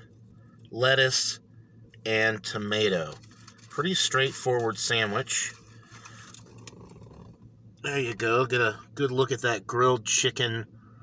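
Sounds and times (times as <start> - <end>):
man talking: 3.8 - 5.6, 7.8 - 10.7.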